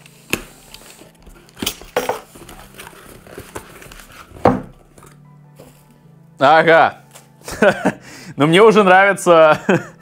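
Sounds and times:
cardboard flaps scraping open: 2.3s - 4.5s.

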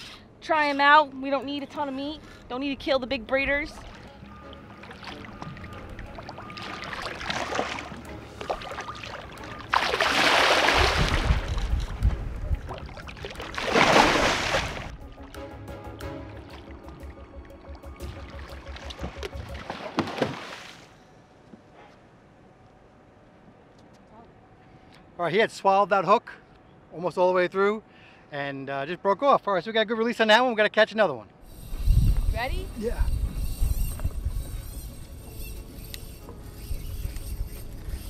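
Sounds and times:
background music: 2.8s - 13.5s, 14.9s - 20.5s
shark thrashing and splashing: 6.7s - 11.8s, 12.8s - 14.9s.

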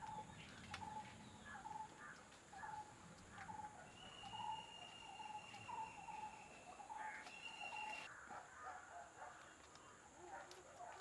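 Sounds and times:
bird calling: 0.0s - 8.1s.

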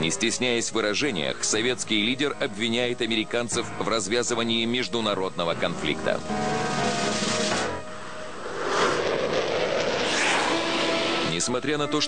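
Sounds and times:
aircraft passing: 6.2s - 12.0s.

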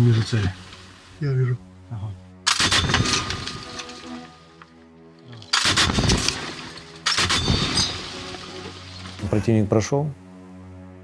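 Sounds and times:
background music: 0.0s - 11.0s
machine gun firing a burst: 5.6s - 6.5s, 7.1s - 8.3s.

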